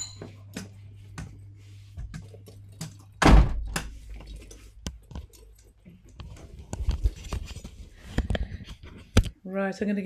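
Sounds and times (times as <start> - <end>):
door shutting with heavy thump: 3.2 - 3.8.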